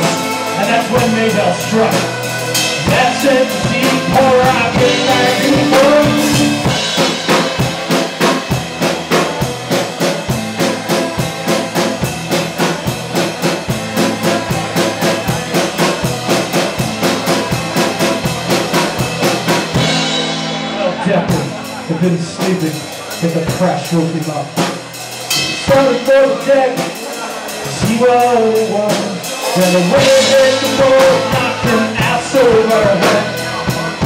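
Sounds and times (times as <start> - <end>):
accordion: 0.0 - 34.0
drum kit fast beat: 0.0 - 34.0.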